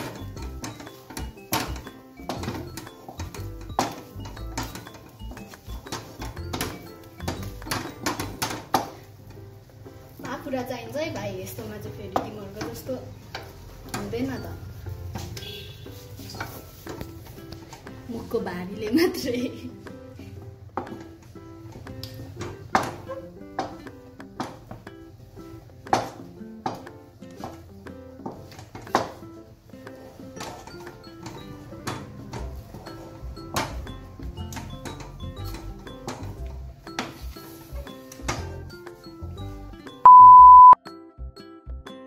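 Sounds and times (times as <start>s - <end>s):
background music with stepping melody: 0.0s - 42.0s
loud steady beep: 40.0s - 40.8s.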